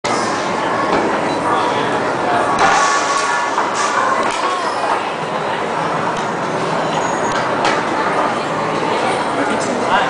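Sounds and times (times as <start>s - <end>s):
people talking: 0.1s - 10.0s.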